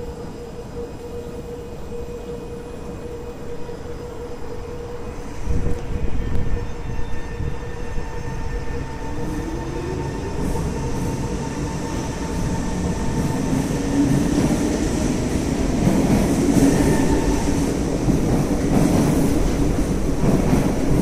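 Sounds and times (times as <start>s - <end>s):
metro train motor hum: 0.0s - 21.0s
train wheels running on rails: 0.0s - 21.0s.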